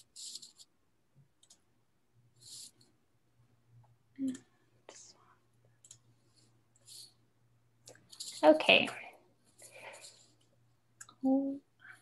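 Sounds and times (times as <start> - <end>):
computer mouse clicks: 1.3 - 1.7, 5.6 - 6.1.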